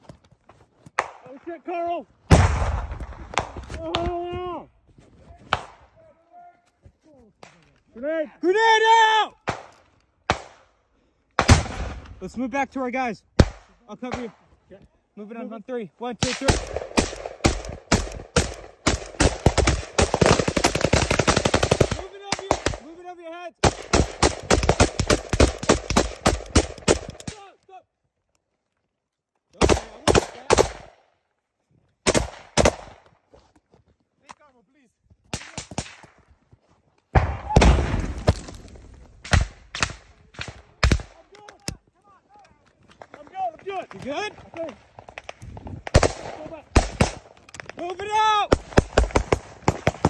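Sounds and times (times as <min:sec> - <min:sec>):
automatic rifle fire: 0:23.6 - 0:27.3.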